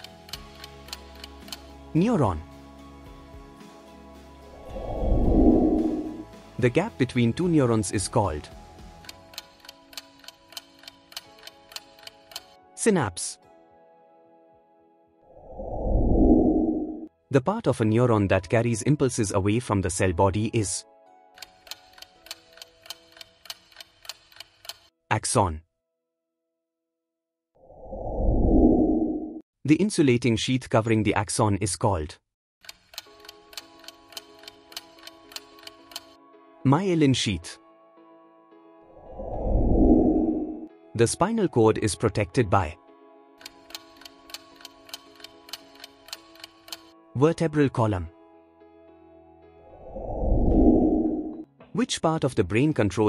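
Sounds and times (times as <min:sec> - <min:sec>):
clock ticking: 0:09.0 - 0:12.5, 0:21.4 - 0:24.9, 0:32.6 - 0:36.2, 0:43.4 - 0:46.9
soft sustained music chord: 0:13.4 - 0:15.2, 0:36.2 - 0:39.2, 0:41.7 - 0:43.6, 0:46.9 - 0:49.8.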